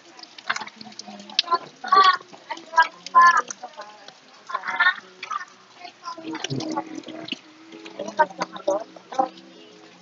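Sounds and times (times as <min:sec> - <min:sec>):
faint background chatter: 0:00.0 - 0:10.0.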